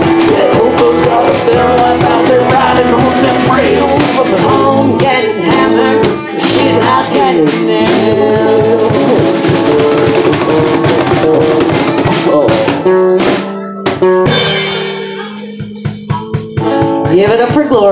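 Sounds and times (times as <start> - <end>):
harmonica: 0.0 - 7.4
bass guitar: 0.0 - 17.9
cajon strikes: 0.0 - 17.9
guitars: 0.0 - 17.9
live blues-rock band playing: 0.0 - 17.9.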